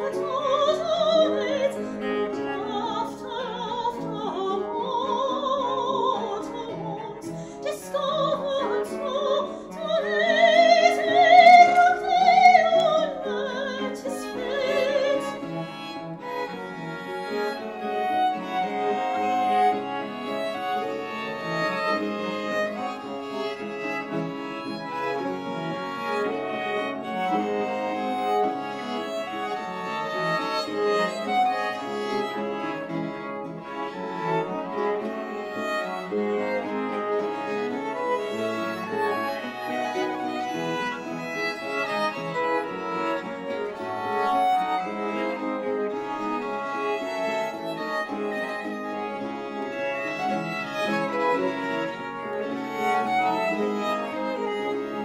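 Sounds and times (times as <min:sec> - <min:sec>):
violins: 0:00.0 - 0:55.0
cello bass line: 0:00.1 - 0:55.0.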